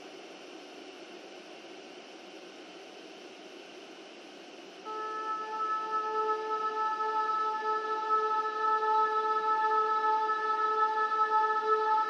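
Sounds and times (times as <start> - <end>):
digital noise hiss: 0.0 - 12.0
sustained synth chord: 4.9 - 12.0.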